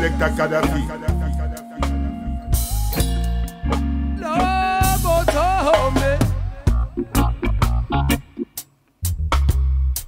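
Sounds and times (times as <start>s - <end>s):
chanted deejay-style vocal: 0.0s - 2.6s, 4.2s - 7.4s
reggae music with heavy bass: 0.0s - 10.0s.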